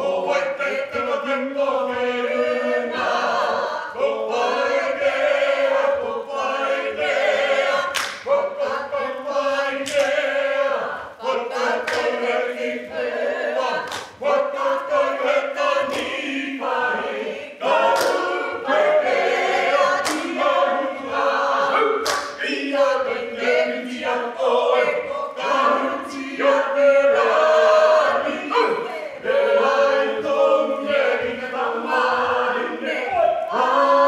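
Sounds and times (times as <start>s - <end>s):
group singing in unison: 0.0s - 34.0s
sharp claps: 7.9s - 8.3s, 9.8s - 10.2s, 11.8s - 12.3s, 13.8s - 14.2s, 15.8s - 16.2s, 17.8s - 18.4s, 19.9s - 20.4s, 22.0s - 22.5s.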